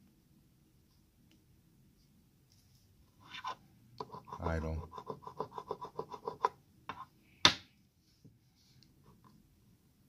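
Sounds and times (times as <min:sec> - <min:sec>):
coin scratching lottery ticket: 0:03.3 - 0:06.5.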